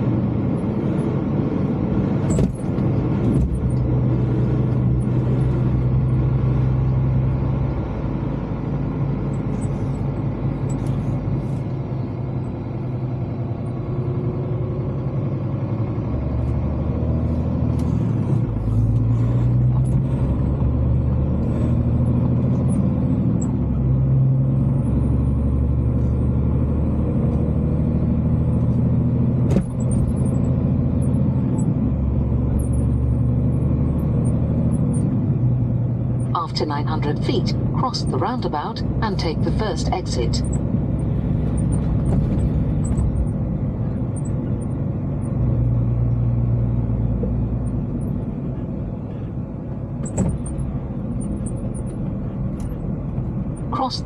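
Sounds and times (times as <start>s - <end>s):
lorry engine humming: 0.0s - 54.0s.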